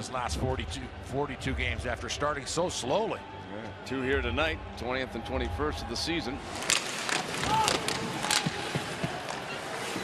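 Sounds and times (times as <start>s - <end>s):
crowd noise: 0.0s - 10.0s
hockey sticks and puck clacking: 6.4s - 10.0s
skates scraping ice: 6.4s - 10.0s.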